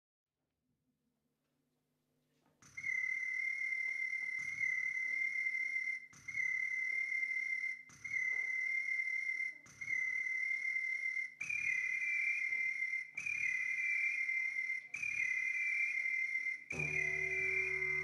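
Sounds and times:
high whistle-like tone: 2.6s - 18.0s
second higher tone: 16.8s - 18.0s.

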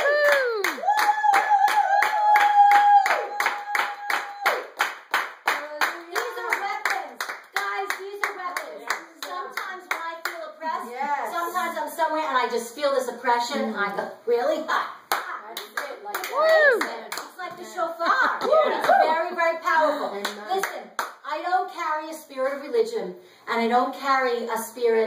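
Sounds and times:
woman whooping: 0.0s - 4.6s, 16.2s - 16.9s, 18.4s - 19.2s
hands clapping in rhythm: 0.0s - 10.5s, 15.1s - 19.2s, 20.2s - 21.2s.

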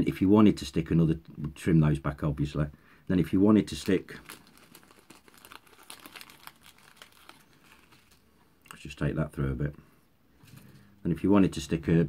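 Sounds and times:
plastic bag crinkling: 3.7s - 8.4s.

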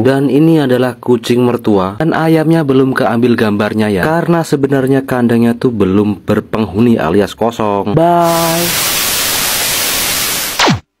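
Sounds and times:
television static hiss: 8.1s - 10.8s.

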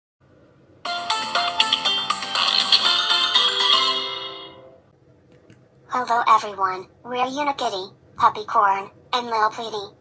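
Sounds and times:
music jingle of short notes: 0.9s - 4.8s.

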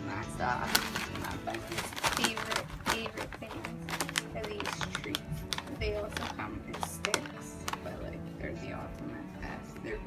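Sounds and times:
background music: 0.0s - 10.0s
plastic bag crinkling: 0.5s - 8.2s.

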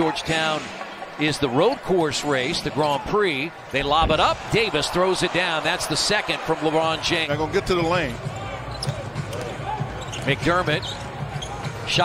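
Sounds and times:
faint voices in arena: 0.0s - 12.0s.

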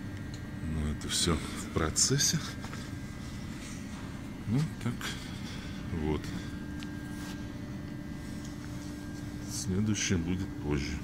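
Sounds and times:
constant tone: 0.0s - 11.0s.

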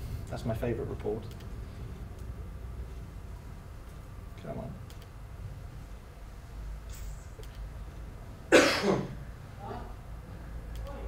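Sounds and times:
person coughing: 8.5s - 9.2s.

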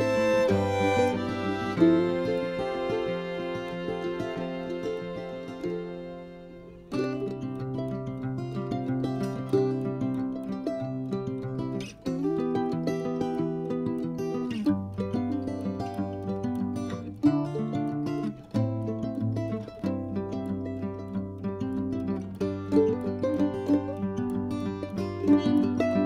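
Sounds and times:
plucked string music: 0.0s - 26.0s.

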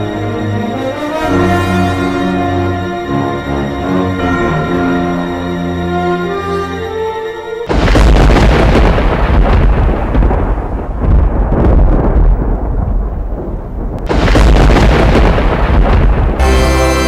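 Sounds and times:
intro music: 0.0s - 9.2s, 16.4s - 17.0s
deep rumbling thunder: 7.7s - 16.8s.

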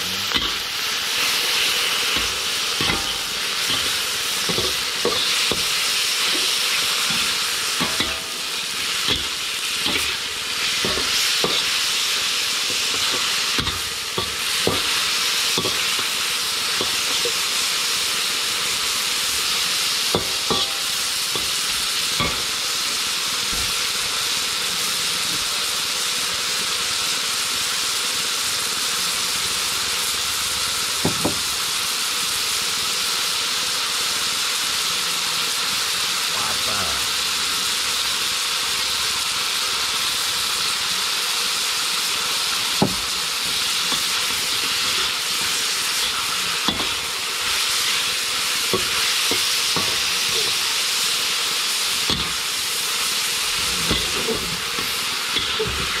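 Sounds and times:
meat sizzling in a wok: 0.0s - 56.0s.

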